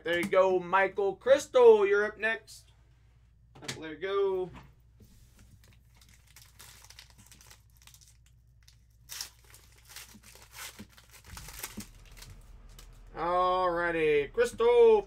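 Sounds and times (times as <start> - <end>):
foil wrapper crinkling and tearing: 5.6 - 13.1.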